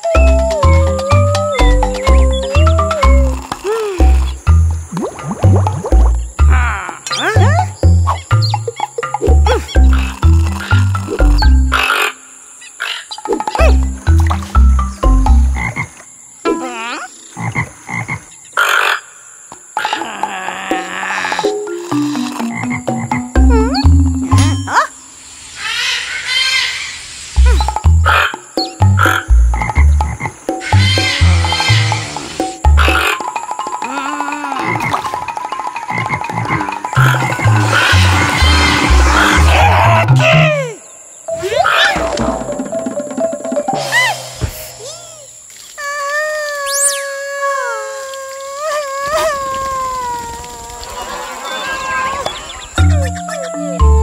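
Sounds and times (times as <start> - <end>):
cartoon frog croaks: 5.0 - 8.2, 19.8 - 25.0, 27.4 - 40.8
whistling glides and chirps: 40.2 - 42.1, 46.7 - 47.1, 51.4 - 54.0.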